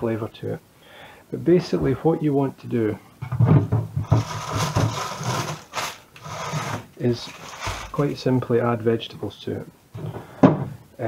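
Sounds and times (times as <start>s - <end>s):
plastic drawer scraping: 4.0s - 8.0s.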